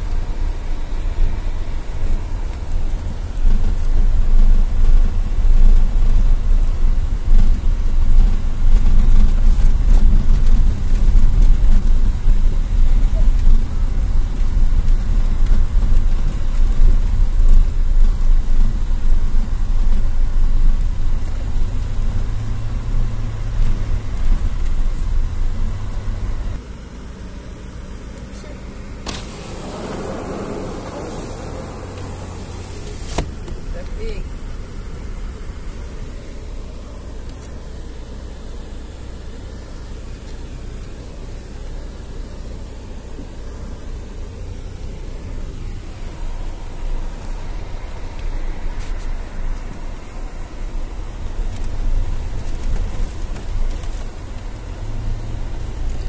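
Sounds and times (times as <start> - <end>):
tyres and engine rumble: 0.0 - 56.0.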